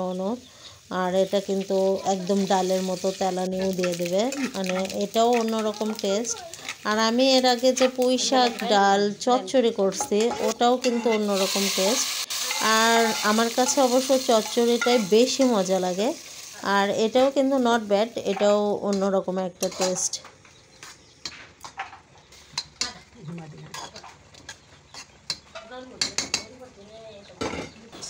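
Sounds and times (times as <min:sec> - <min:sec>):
oil sizzling in a pot: 0:00.0 - 0:20.2
woman talking: 0:00.0 - 0:20.3
thick dal simmering: 0:00.0 - 0:28.0
spoon scraping a pan: 0:03.5 - 0:05.9, 0:07.6 - 0:15.6, 0:18.2 - 0:20.2, 0:23.7 - 0:26.5.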